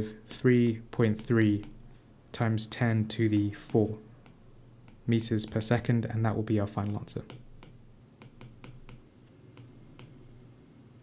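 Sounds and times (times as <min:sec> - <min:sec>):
faint low steady hum: 0:00.0 - 0:11.0
stylus tapping tablet screen: 0:01.2 - 0:02.0, 0:03.8 - 0:05.9, 0:06.7 - 0:10.4.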